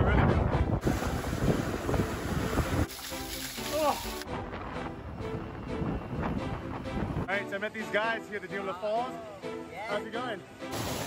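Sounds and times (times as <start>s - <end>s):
wind buffeting microphone: 0.0s - 2.9s, 4.2s - 7.3s.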